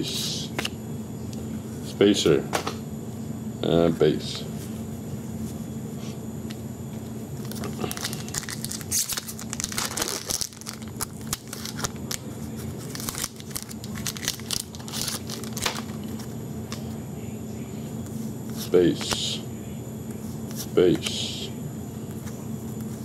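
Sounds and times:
steady low hum: 0.0 - 23.0
foil wrapper crinkling: 7.4 - 16.2.

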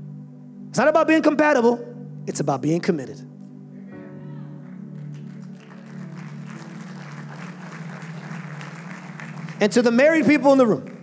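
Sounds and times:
soft background music: 0.0 - 11.0
congregation clapping: 4.6 - 11.0.

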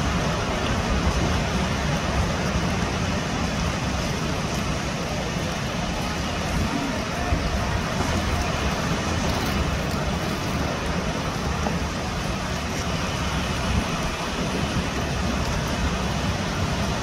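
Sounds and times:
waves breaking on rocky shore: 0.0 - 17.0.

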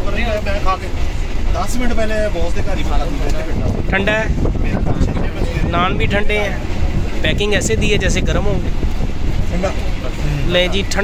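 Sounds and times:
man talking: 9.5 - 11.0.

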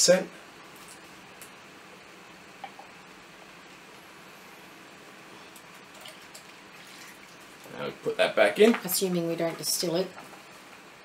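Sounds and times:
faint liquid drips: 5.4 - 7.8.

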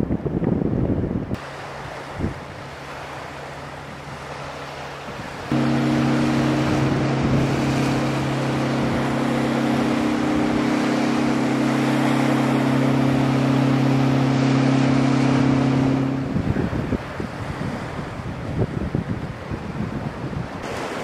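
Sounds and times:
wind: 0.0 - 21.0
boat engines droning: 1.3 - 21.0
bow wave spray: 4.4 - 17.0.

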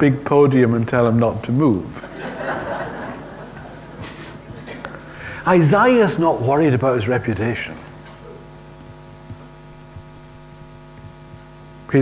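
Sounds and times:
man speaking: 0.0 - 2.0, 5.3 - 8.0
electrical mains hum: 0.0 - 12.0.

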